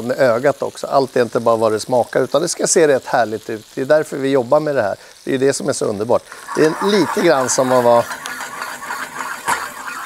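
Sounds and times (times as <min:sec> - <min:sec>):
sausages sizzling in a frying pan: 0:00.0 - 0:10.0.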